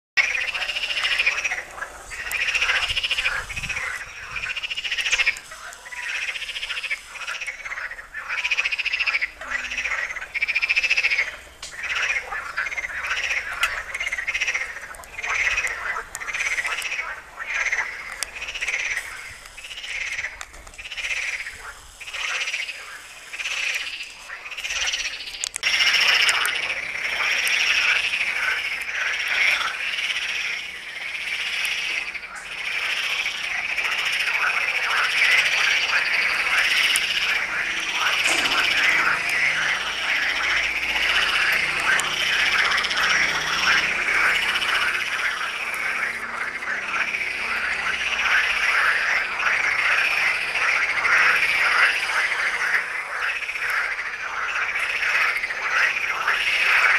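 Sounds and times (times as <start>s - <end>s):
frogs croaking: 0.2s - 56.9s.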